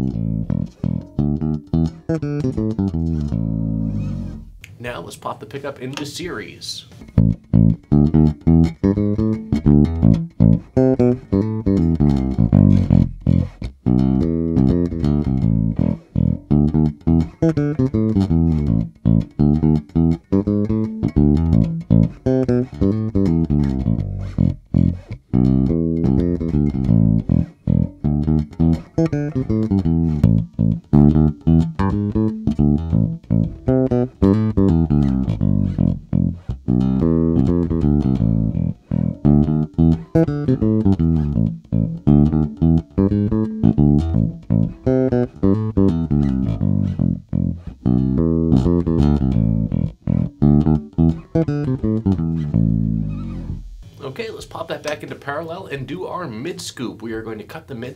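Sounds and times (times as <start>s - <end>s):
electric bass plucked notes: 0.0s - 4.8s, 6.9s - 56.3s.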